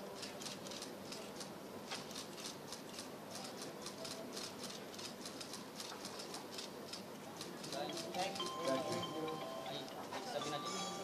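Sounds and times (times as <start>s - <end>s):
murmur of background voices: 0.0s - 11.0s
camera shutters clicking rapidly: 0.2s - 8.2s.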